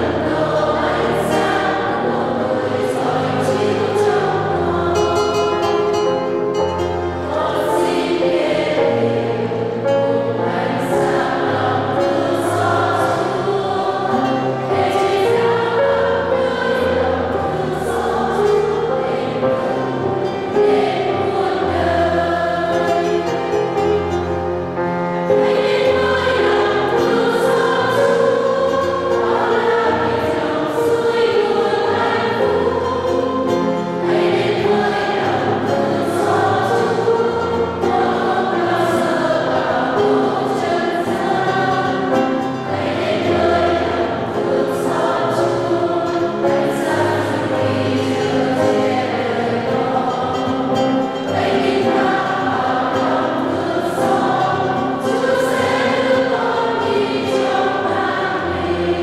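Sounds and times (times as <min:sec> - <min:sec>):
acoustic guitar: 0:00.0 - 0:59.0
choir singing a hymn: 0:00.0 - 0:59.0
piano: 0:00.0 - 0:59.0.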